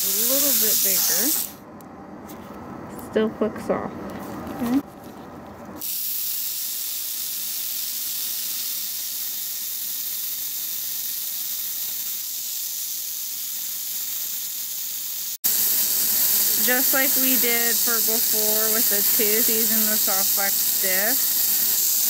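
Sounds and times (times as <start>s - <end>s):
dental handpiece hissing: 0.0s - 1.6s, 5.8s - 22.0s.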